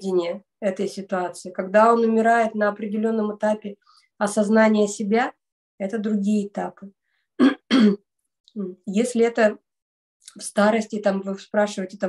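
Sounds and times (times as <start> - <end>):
woman speaking: 0.0 - 7.0, 8.5 - 12.0
woman clearing her throat: 7.4 - 8.0.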